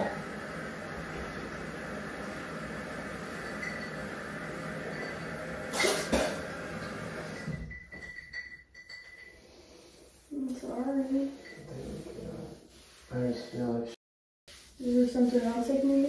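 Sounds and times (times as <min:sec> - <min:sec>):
man retching: 0:05.7 - 0:06.5.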